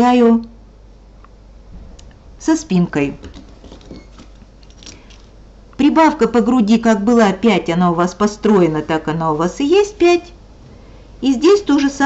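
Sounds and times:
woman speaking: 0:00.0 - 0:00.6, 0:02.4 - 0:03.4, 0:05.8 - 0:10.4, 0:11.2 - 0:12.0.

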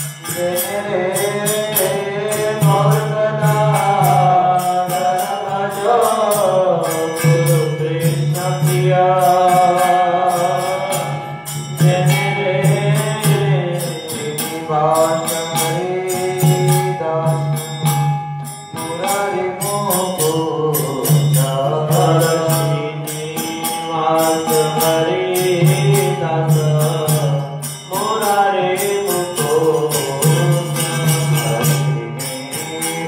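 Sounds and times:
person singing a chant: 0:00.0 - 0:18.1, 0:18.8 - 0:33.0
small hand cymbals: 0:00.0 - 0:33.0.

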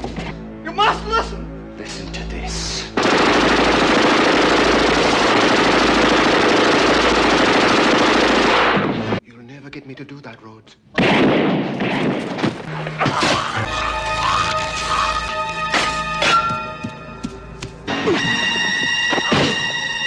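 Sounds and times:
automatic gunfire: 0:03.0 - 0:09.2.

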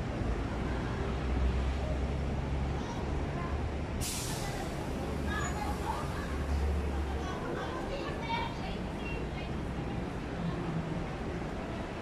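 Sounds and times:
street noise: 0:00.0 - 0:12.0
passers-by talking: 0:00.4 - 0:12.0.

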